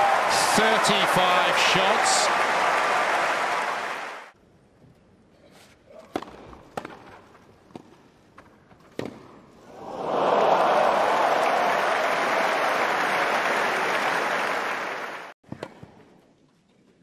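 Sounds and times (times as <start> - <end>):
crowd cheering and applause: 0.0 - 4.3, 9.7 - 15.4.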